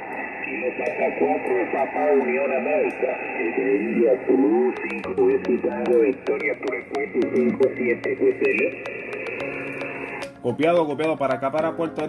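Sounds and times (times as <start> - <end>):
radio static crackle: 0.0 - 10.3
radio band hiss: 0.0 - 10.5
thin radio voice: 0.5 - 8.2.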